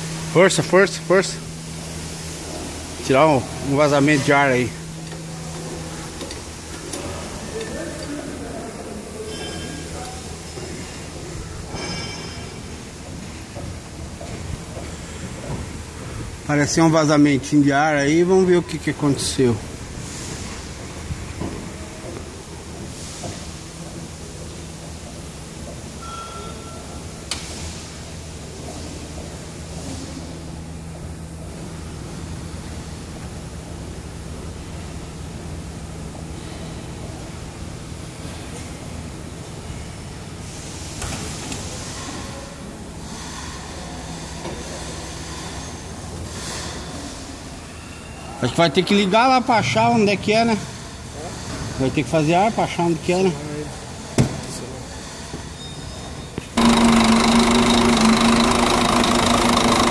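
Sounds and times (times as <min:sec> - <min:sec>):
steady air hiss: 0:00.0 - 0:11.7, 0:19.2 - 0:25.6
diesel truck engine idling: 0:56.6 - 0:59.9.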